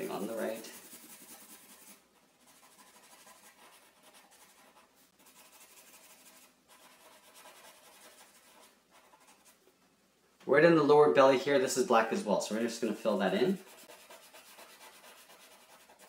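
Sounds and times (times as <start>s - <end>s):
marker scratching on paper: 0.0s - 9.6s, 12.9s - 16.0s.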